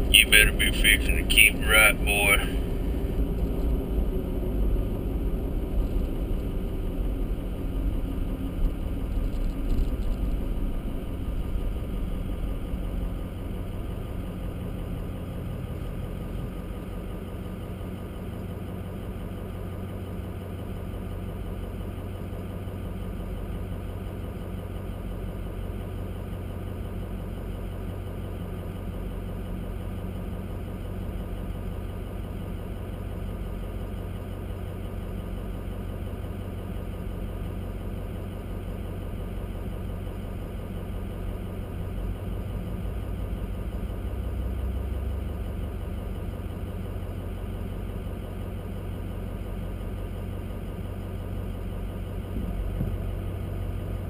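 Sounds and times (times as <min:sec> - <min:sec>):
car engine and road rumble: 0:00.0 - 0:54.0
car engine idling: 0:00.0 - 0:54.0.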